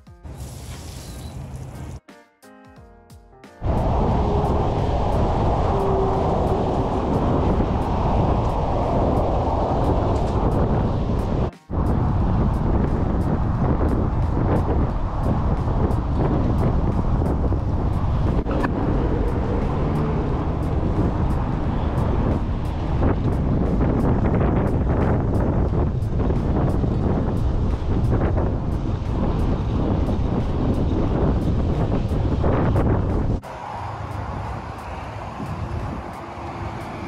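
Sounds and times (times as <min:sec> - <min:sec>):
wind buffeting microphone: 0:03.6 - 0:37.0.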